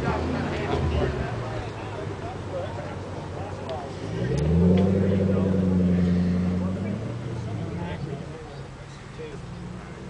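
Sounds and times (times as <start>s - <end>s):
background chatter: 0.0s - 10.0s
vehicle engine revving: 3.8s - 8.6s.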